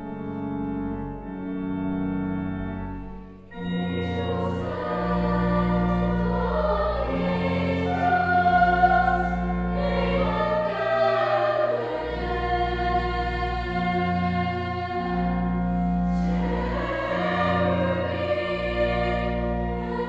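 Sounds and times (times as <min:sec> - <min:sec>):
organ chords: 0:00.0 - 0:20.0
girls singing a carol: 0:03.8 - 0:20.0.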